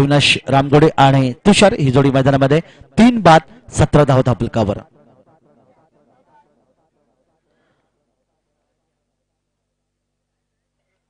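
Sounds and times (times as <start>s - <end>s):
faint distant voices: 4.8s - 9.3s.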